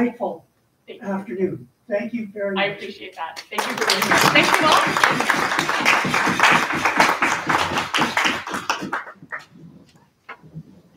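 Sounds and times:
audience applauding: 3.4 - 9.6.

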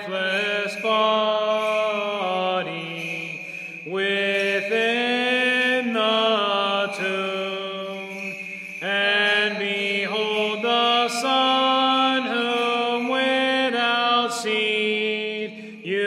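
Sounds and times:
slow liturgical chant: 0.0 - 16.0.

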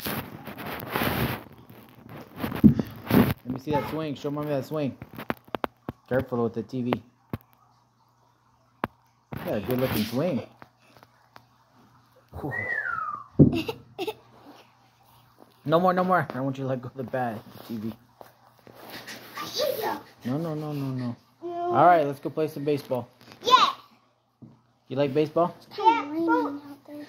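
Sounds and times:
whistled note gliding downward: 12.4 - 13.3.

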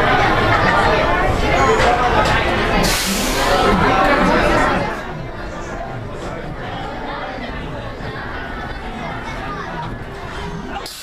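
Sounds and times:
crowd chattering indoors: 0.0 - 11.0
loud hiss of air: 2.8 - 3.6.

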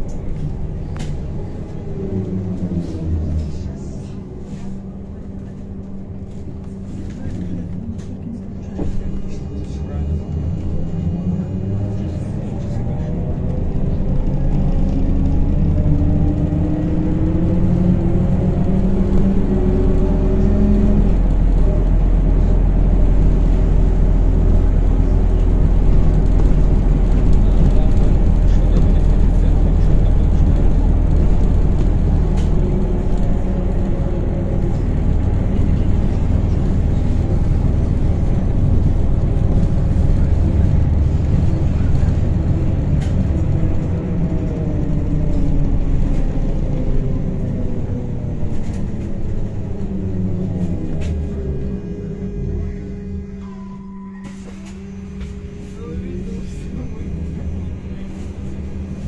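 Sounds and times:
trolleybus low running rumble: 0.0 - 59.0.

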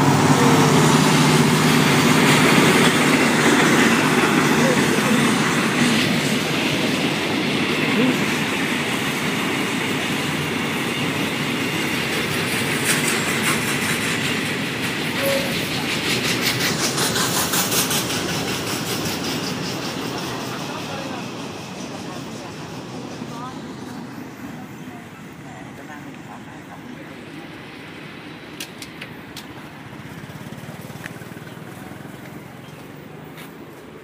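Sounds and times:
train wheels clattering on rails: 0.0 - 26.9, 27.6 - 34.0.

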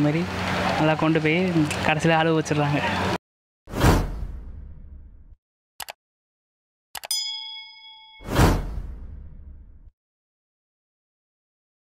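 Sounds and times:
whoosh sound effect: 8.2 - 9.6.

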